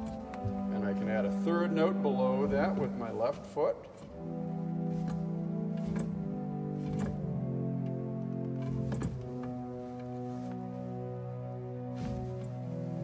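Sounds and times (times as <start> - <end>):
pipe organ pedal chord: 0.0 - 13.0.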